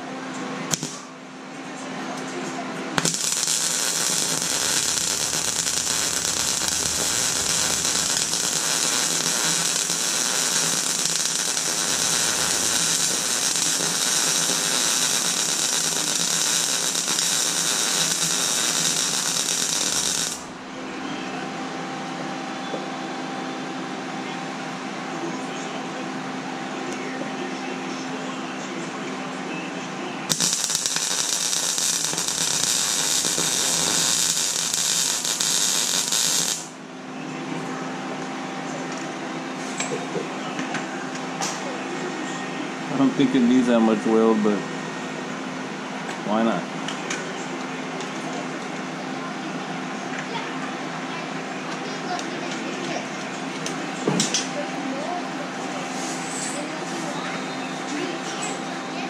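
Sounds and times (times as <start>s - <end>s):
arc welding crackling hiss: 0.7s - 1.0s, 3.0s - 20.5s, 30.3s - 36.8s
low hum: 3.1s - 17.2s.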